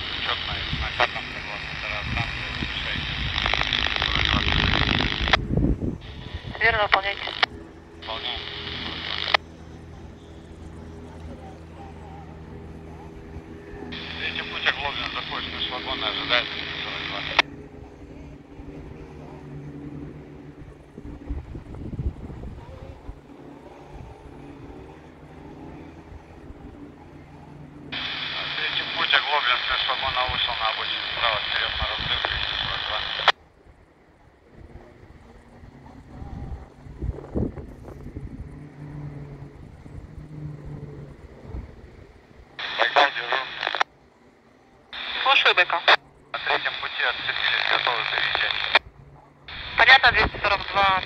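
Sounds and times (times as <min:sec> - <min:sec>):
tinny noisy radio transmission: 0:00.0 - 0:05.4, 0:06.0 - 0:21.4, 0:22.4 - 0:33.4, 0:42.4 - 0:51.0
low uneven rumble: 0:00.0 - 0:51.0
radio squelch click: 0:00.1 - 0:05.4, 0:06.0 - 0:09.4, 0:28.0 - 0:33.4, 0:42.6 - 0:43.8, 0:45.0 - 0:48.8, 0:49.5 - 0:51.0.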